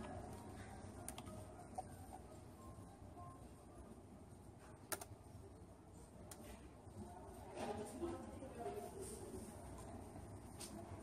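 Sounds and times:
computer mouse clicks: 1.1 - 1.3, 4.9 - 5.1.

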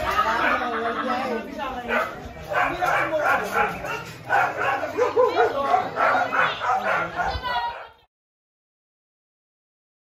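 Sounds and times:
people talking at once: 0.0 - 8.1.

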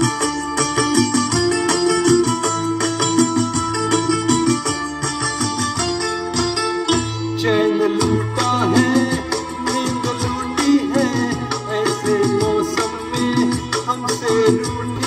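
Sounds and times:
instrumental melody over steady beat: 0.0 - 15.0
person singing: 7.3 - 15.0.

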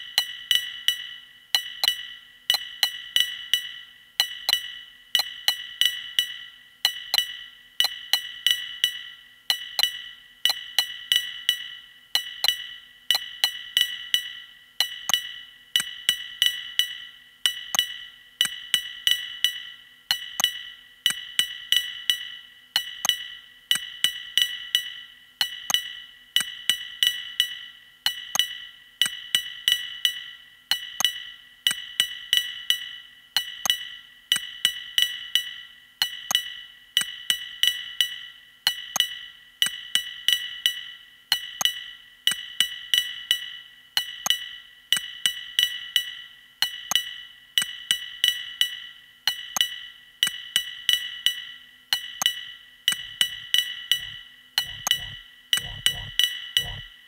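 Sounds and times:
electronic percussion rhythm: 52.9 - 57.0.

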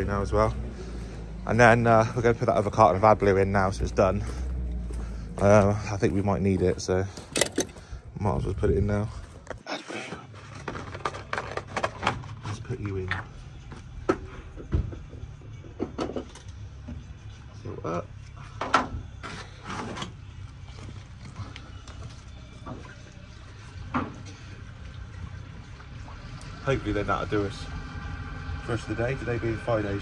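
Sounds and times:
low hum: 0.0 - 6.1.

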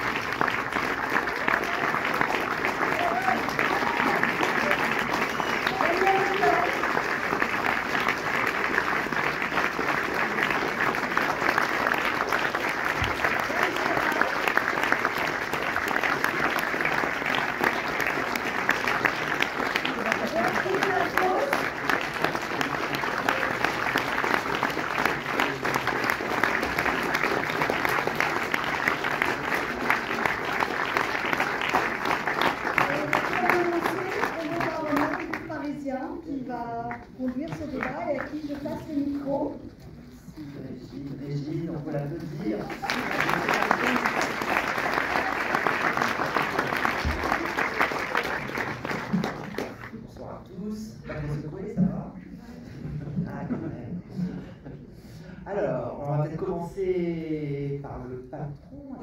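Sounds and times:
audience applauding: 0.0 - 39.0, 41.2 - 51.3.

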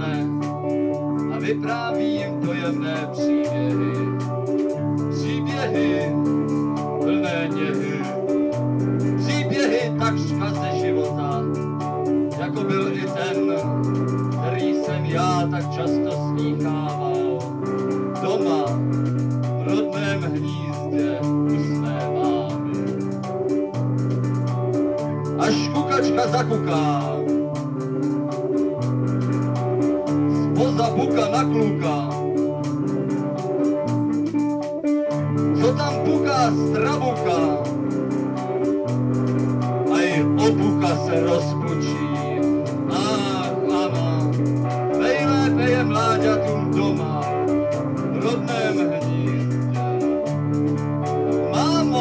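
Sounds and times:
band playing sustained chords: 0.0 - 52.0
bass guitar notes: 0.0 - 52.0
electric guitar: 0.0 - 52.0
steady beat: 0.0 - 52.0.

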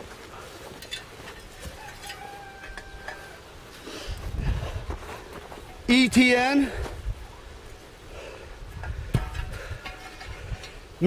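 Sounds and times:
wind rumble on microphone: 4.1 - 5.4, 8.5 - 11.0.

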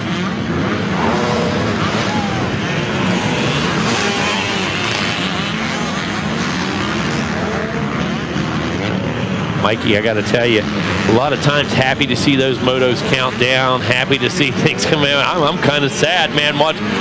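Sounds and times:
motocross bike engines revving: 0.0 - 17.0.

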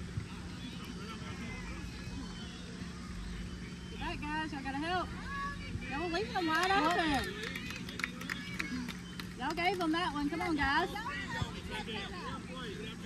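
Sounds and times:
background chatter: 0.0 - 13.0
steady low hum: 0.0 - 13.0.

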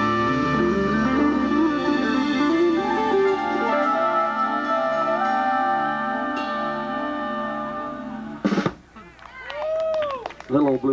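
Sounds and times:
live band sustained chord: 0.0 - 8.7.

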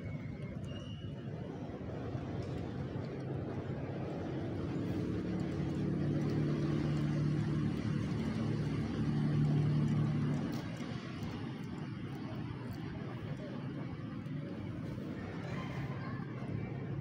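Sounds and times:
vehicle engine humming: 1.4 - 17.0.

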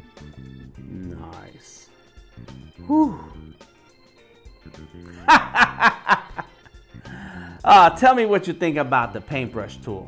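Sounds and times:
man laughing: 5.1 - 6.7.

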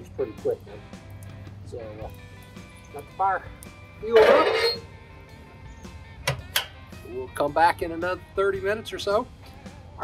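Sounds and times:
faint guitar music: 0.0 - 10.0
metal door swinging shut: 6.2 - 6.8.

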